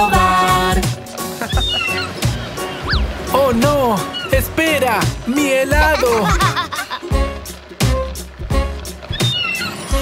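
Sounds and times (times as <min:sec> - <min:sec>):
upbeat cartoon music: 0:00.0 - 0:10.0
cartoon seagull squawk: 0:01.4 - 0:03.1, 0:04.0 - 0:04.4, 0:09.1 - 0:10.0.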